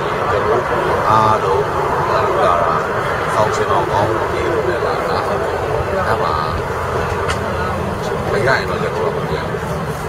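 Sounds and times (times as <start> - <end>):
low rumble of street traffic: 0.0 - 10.0
man talking: 0.0 - 10.0.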